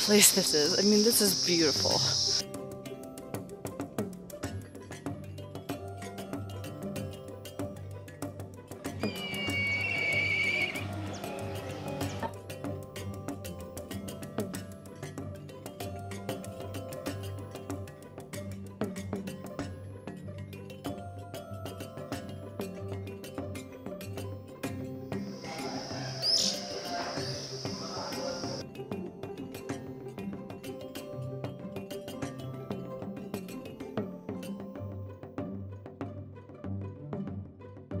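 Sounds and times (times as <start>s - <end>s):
background music: 0.0s - 38.0s
thin high steady note: 9.0s - 11.2s
bird of prey whinnying call: 9.0s - 11.3s, 25.3s - 28.6s.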